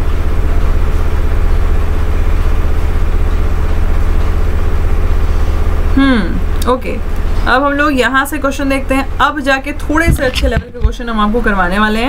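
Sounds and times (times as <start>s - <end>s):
loud low hum: 0.0s - 12.0s.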